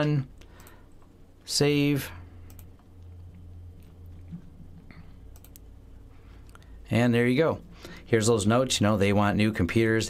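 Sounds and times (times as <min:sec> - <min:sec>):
low steady hum: 0:00.0 - 0:10.0
computer mouse clicks: 0:00.4 - 0:00.8, 0:02.4 - 0:03.1, 0:05.3 - 0:05.7.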